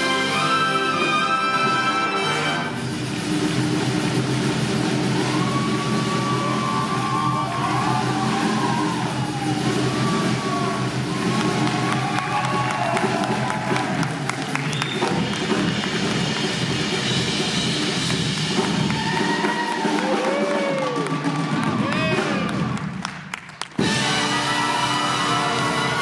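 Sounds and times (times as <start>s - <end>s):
audience applause and cheering: 0.0s - 26.0s
big jazz band chord: 23.8s - 26.0s.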